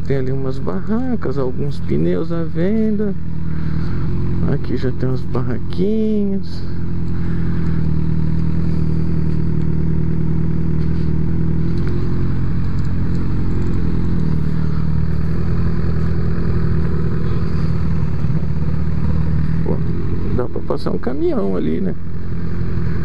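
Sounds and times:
motorcycle engine running at low revs: 0.0 - 23.0.

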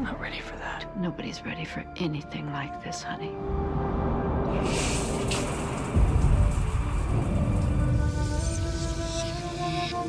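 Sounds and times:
thunder rumbling: 3.4 - 10.0
rain hiss: 4.5 - 10.0.

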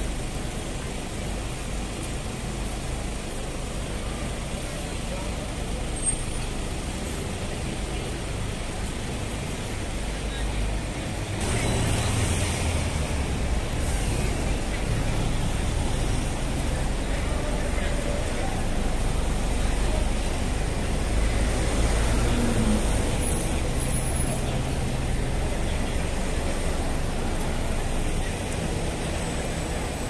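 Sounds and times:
low rumble of road vehicles: 0.0 - 30.0
passers-by's voices: 0.0 - 30.0.

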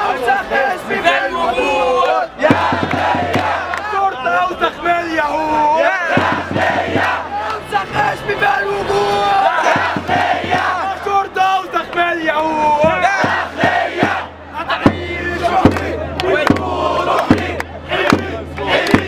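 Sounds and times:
crowd chanting a slogan: 0.0 - 19.0.

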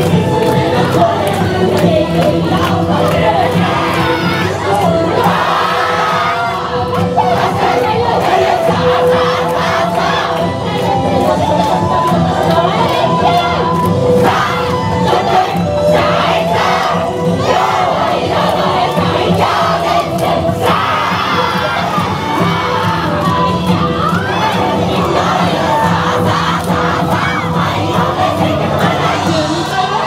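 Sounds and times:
loud dance music: 0.0 - 30.0.

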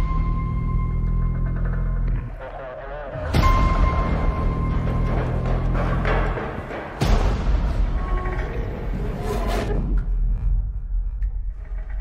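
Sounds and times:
deep steady rumble: 0.0 - 12.0.

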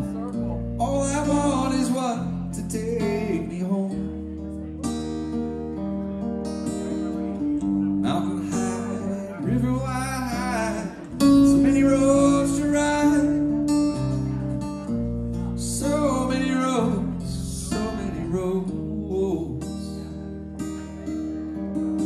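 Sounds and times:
electric guitar melody: 0.0 - 22.0
low bass notes: 0.0 - 22.0.

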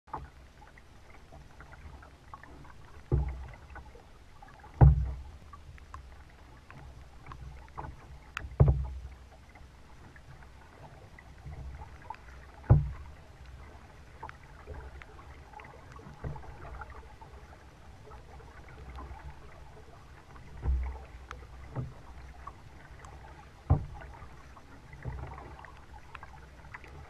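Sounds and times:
water drips and splashes: 0.1 - 27.0
water rumbling against hull: 0.1 - 27.0
paddle strokes thumping: 2.4 - 3.9, 4.6 - 5.5, 6.7 - 9.2, 10.8 - 17.0, 20.4 - 24.3.

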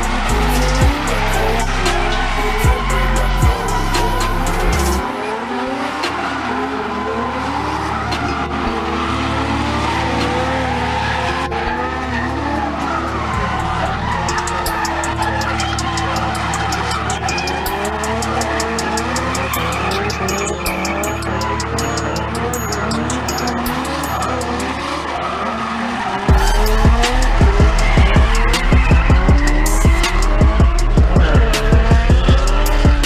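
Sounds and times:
music with steady beat: 0.0 - 5.1, 7.7 - 11.4, 13.3 - 25.0, 26.3 - 33.0
car engines revving: 0.0 - 33.0
tyres squealing: 0.0 - 33.0.

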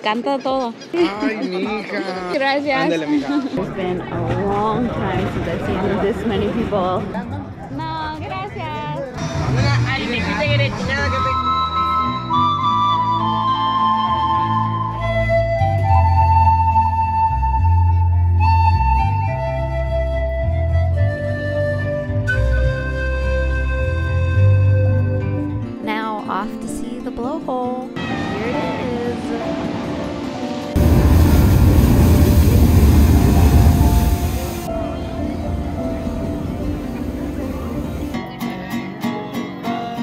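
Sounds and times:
deep bass accompaniment: 8.2 - 25.7
pan flute melody: 10.8 - 25.8, 32.0 - 38.5
blowhole water surging: 28.0 - 34.7.

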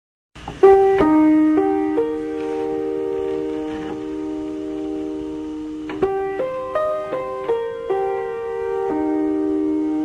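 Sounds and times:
piano music: 0.5 - 10.0.

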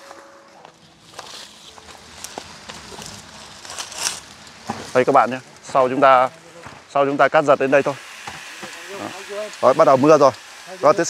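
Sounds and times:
rustling and shuffling: 0.0 - 6.9
faint outdoor hiss: 0.0 - 11.0.

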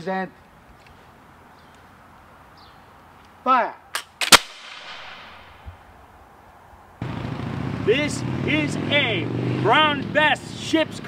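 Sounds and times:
musket shots echoing: 4.0 - 5.7.

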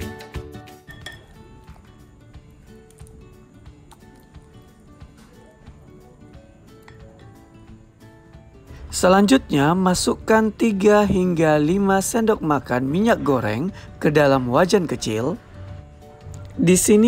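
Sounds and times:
soft background music: 0.0 - 17.0
clinks against glass: 0.8 - 1.4.

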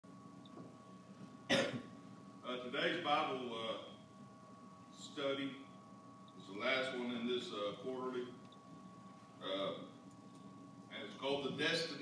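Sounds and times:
faint steady hum: 0.0 - 12.0
short sharp cough: 1.5 - 1.9.

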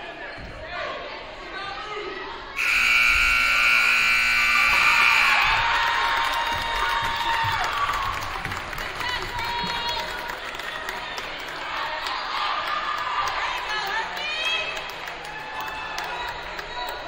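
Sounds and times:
crowd noise in a gym: 0.0 - 17.0
scoreboard buzzer: 2.6 - 5.7.

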